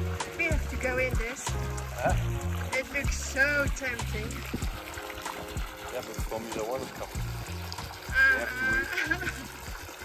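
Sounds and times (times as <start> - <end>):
water trickling: 0.0 - 10.0
man laughing: 8.8 - 9.5.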